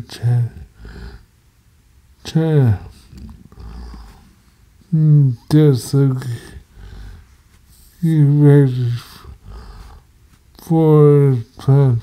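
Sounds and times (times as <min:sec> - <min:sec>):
man's drawn-out hesitation sound: 0:02.2 - 0:02.9.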